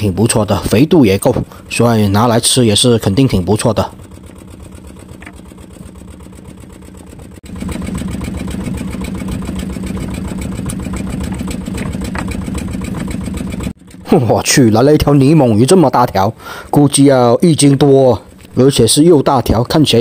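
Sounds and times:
boat engine droning: 0.0s - 20.0s.

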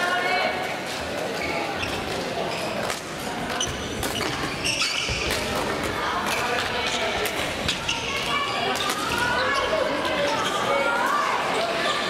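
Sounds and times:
voices echoing in sports hall: 0.0s - 12.0s
badminton rackets hitting shuttlecocks: 3.9s - 9.4s.

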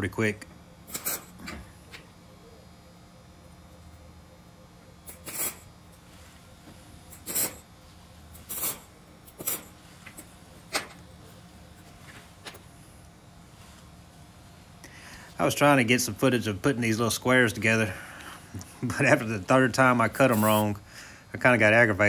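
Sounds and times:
faint low hum: 0.0s - 22.0s
welder tack welding bursts: 0.9s - 1.4s, 5.1s - 5.7s, 7.1s - 7.7s, 8.3s - 9.8s.

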